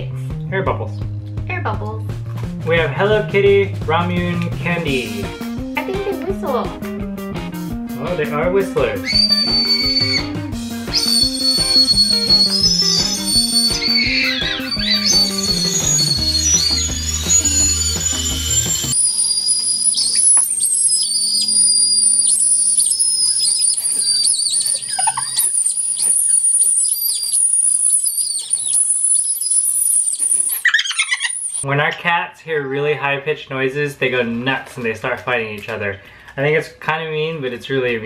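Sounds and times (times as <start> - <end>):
background music: 0.0 - 19.0
shrill candy whistles: 9.0 - 31.7.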